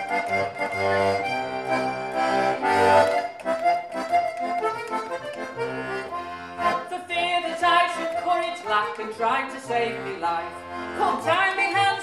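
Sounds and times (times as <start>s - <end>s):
button accordion folk tune: 0.0s - 12.0s
woman singing: 6.8s - 12.0s.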